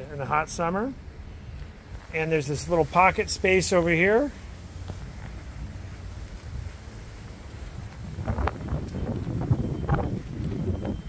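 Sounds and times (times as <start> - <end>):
wind rumbling on microphone: 4.4 - 11.0.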